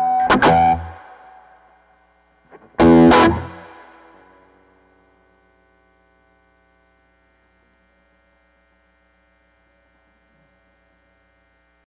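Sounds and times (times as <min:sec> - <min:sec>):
guitar amplifier mains hum: 0:00.0 - 0:11.9.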